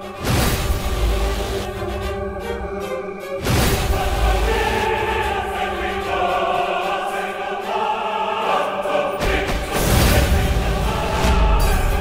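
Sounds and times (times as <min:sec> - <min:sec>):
dramatic orchestral score: 0:00.0 - 0:12.0
wordless choir singing: 0:00.0 - 0:12.0.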